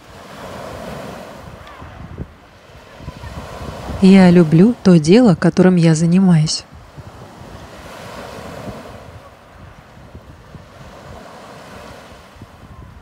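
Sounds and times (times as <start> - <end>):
surf washing over pebble beach: 0.0 - 4.6, 6.6 - 13.0.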